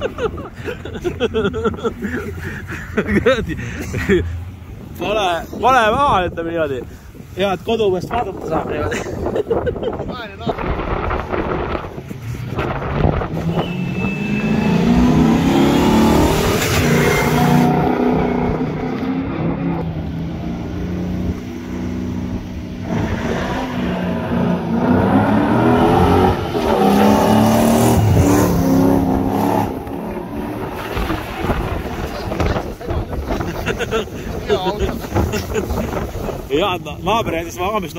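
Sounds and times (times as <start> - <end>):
trucks passing at speed: 10.7 - 34.5.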